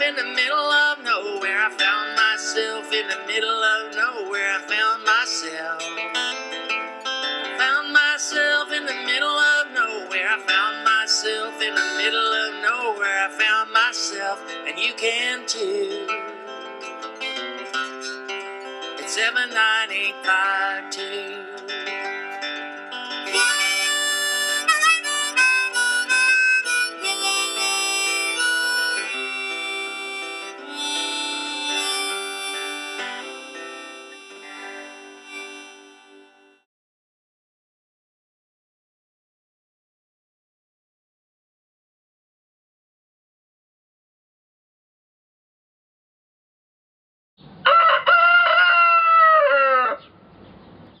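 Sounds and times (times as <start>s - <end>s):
strummed acoustic guitar: 0.0s - 36.6s
harmonica solo: 23.2s - 36.7s
rooster crowing: 47.6s - 50.1s.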